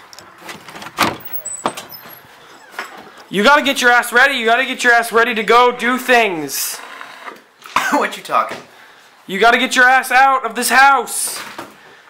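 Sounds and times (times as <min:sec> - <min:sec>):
front door opening: 0:00.0 - 0:03.9.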